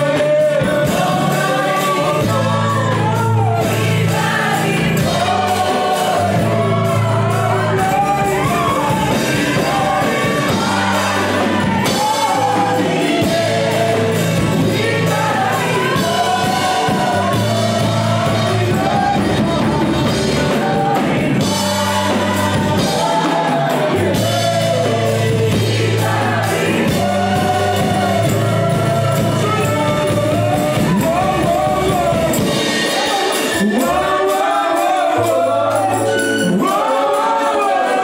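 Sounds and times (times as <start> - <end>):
backing vocalists singing: 0.0 - 38.0
instrumental accompaniment with bass: 0.0 - 38.0
lead singer: 0.0 - 38.0.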